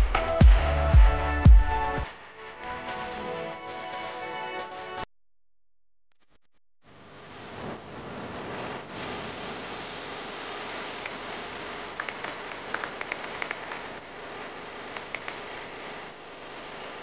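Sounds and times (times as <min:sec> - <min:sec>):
steady static hiss: 0:06.8 - 0:17.0
sharp clicks: 0:12.0 - 0:13.9, 0:14.9 - 0:15.5.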